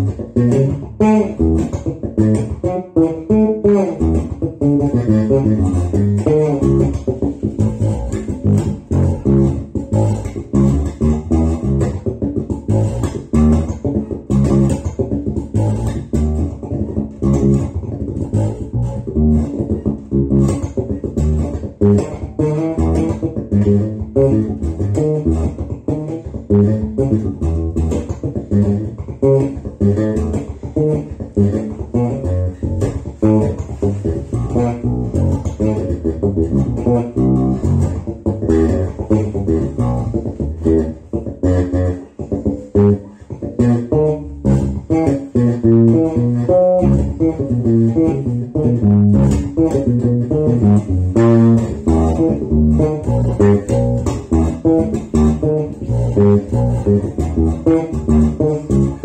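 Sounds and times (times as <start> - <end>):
electric bass guitar plucked: 0.0 - 59.0.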